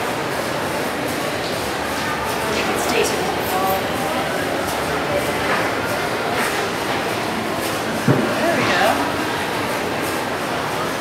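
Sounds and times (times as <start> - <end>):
store background rumble and hiss: 0.0 - 11.0.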